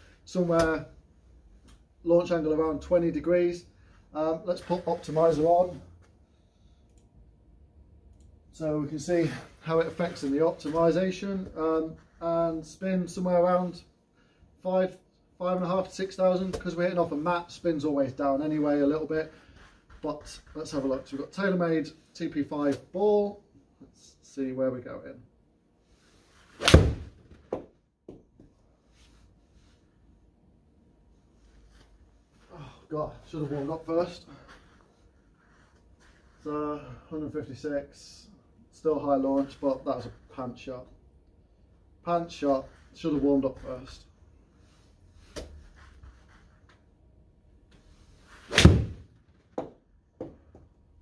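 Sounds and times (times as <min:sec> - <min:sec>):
golf club swish: 0:26.0 - 0:27.6, 0:47.7 - 0:49.1
ball smacking into screen: 0:26.6 - 0:27.7, 0:48.5 - 0:49.0
golf club hitting ball: 0:26.6 - 0:27.7, 0:48.5 - 0:50.3.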